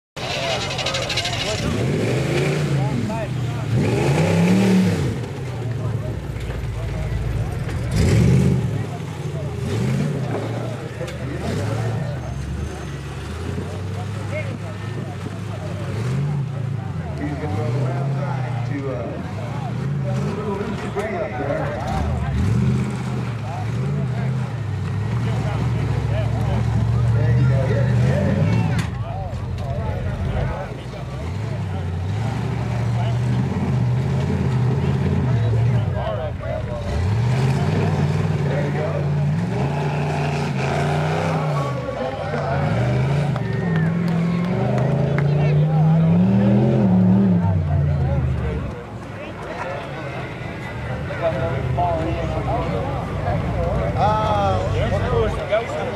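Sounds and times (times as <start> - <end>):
buggy engine revving: 0.2 - 55.9.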